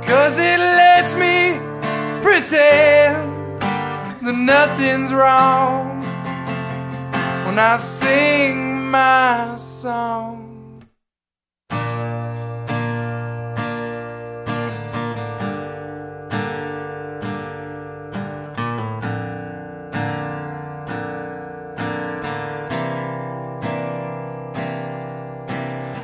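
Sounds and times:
acoustic guitar playing: 0:00.0 - 0:10.9, 0:11.7 - 0:26.0.

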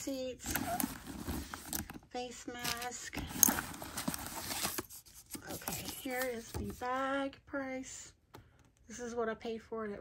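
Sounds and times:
bag lining rustling: 0:00.4 - 0:02.0.

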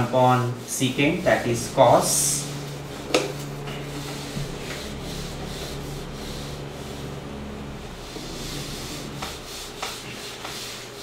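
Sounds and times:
duster rubbing on whiteboard: 0:00.0 - 0:11.0.

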